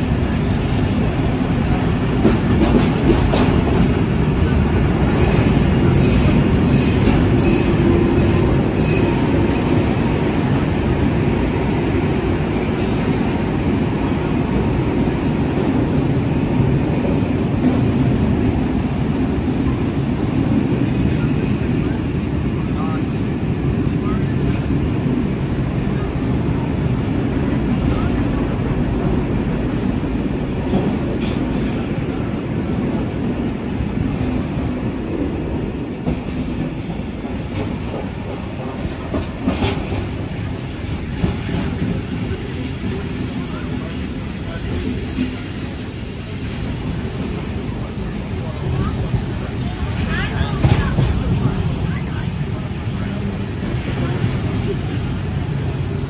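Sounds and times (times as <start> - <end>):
train wheels rumbling on rails: 0.0 - 56.0.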